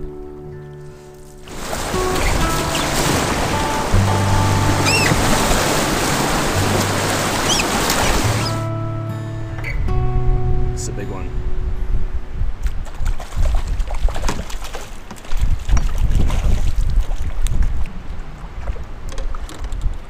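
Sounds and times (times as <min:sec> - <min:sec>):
background music: 0:00.0 - 0:12.2
whitewater rapids rushing: 0:01.4 - 0:08.7.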